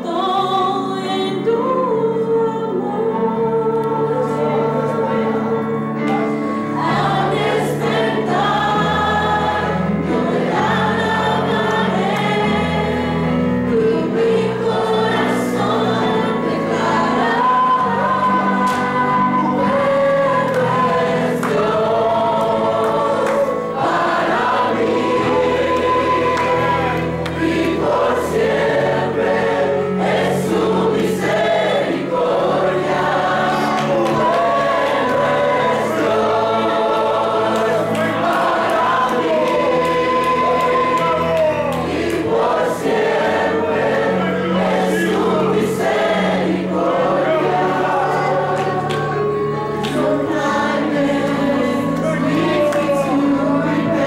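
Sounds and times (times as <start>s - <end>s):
woman singing into microphone: 0.0s - 5.6s
youth choir singing: 0.0s - 54.0s.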